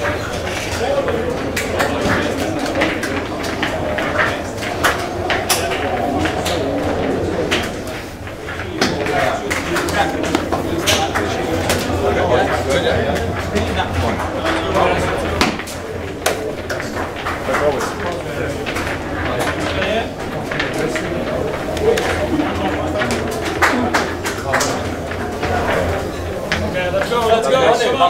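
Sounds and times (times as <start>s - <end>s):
many voices talking and calling: 0.0s - 28.0s.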